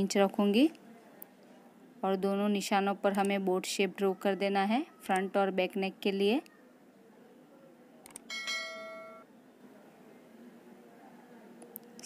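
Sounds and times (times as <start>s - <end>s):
click: 8.0s - 8.3s, 11.6s - 12.0s
bright bell chime: 8.3s - 9.2s.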